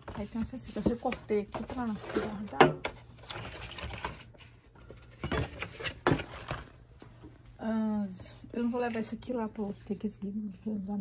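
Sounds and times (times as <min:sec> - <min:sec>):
cardboard and paper rustling: 0:00.0 - 0:06.8.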